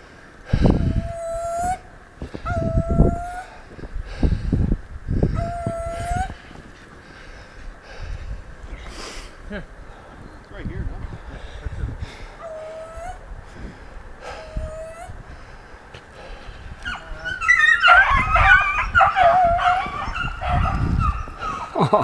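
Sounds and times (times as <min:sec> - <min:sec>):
dogs yelping and baying: 0:00.7 - 0:03.6, 0:05.3 - 0:06.5, 0:12.4 - 0:13.3, 0:14.2 - 0:15.2, 0:16.8 - 0:21.9
dog whining: 0:00.8 - 0:03.6, 0:05.4 - 0:06.4, 0:12.4 - 0:13.2, 0:14.3 - 0:15.2, 0:16.8 - 0:21.7.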